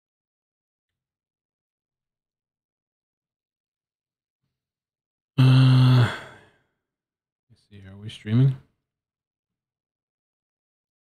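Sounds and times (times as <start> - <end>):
man sighing: 5.4 - 6.5.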